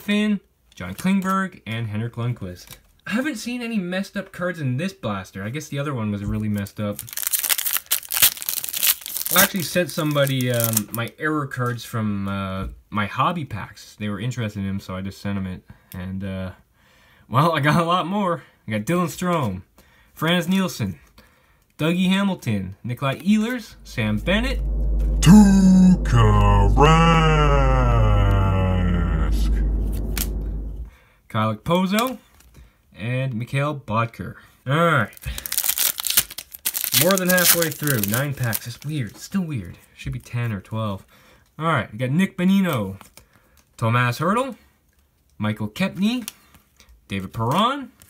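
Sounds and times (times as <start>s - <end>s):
foil wrapper tearing and crinkling: 6.9s - 11.0s, 35.2s - 38.9s
heavy distorted bass rumble: 23.6s - 30.9s
person holding long call: 23.8s - 30.8s.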